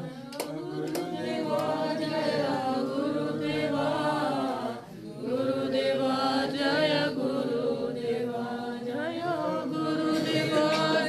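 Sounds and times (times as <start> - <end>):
group singing devotional song: 0.0 - 11.0.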